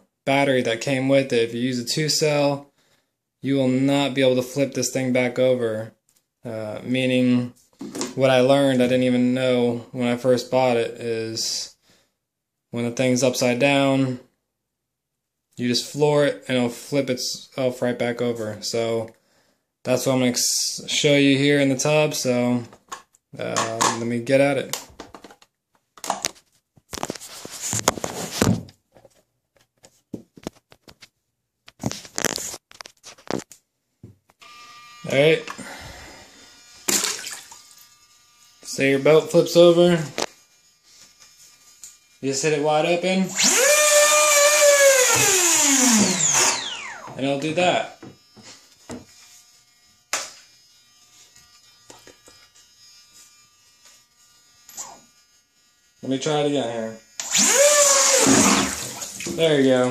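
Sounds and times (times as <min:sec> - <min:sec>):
plastic rustling and scraping: 0:25.0 - 0:33.6
electric motor buzz: 0:34.4 - 0:42.6, 0:43.2 - 0:47.2, 0:47.8 - 0:59.4
water splash: 0:36.9 - 0:37.7, 0:58.2 - 0:59.4.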